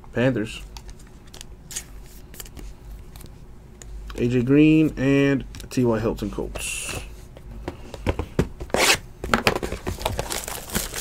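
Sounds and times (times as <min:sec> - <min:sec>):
plastic wrapping rustling: 0:09.3 - 0:11.0.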